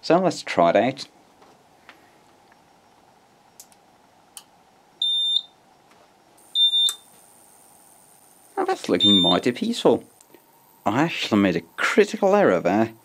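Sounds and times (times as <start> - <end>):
faint high whine: 0.0 - 13.0
small clicks: 3.6 - 4.5, 6.8 - 7.3
high-pitched buzzer beeps: 5.0 - 5.6, 6.5 - 7.1, 9.0 - 9.5.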